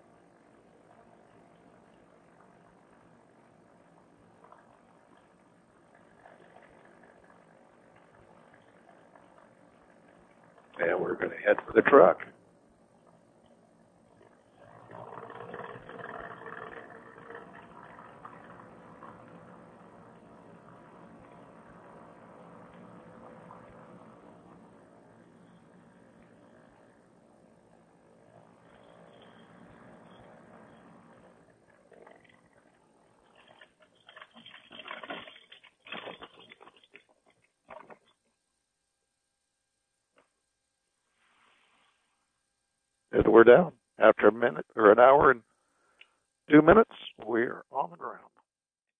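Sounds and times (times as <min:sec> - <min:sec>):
faint engine hum: 0:00.0 - 0:38.0
bumps and rattles on grass: 0:33.3 - 0:38.2.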